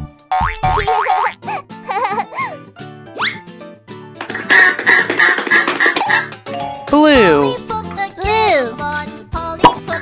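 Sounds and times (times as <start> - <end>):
children's background music: 0.0 - 10.0.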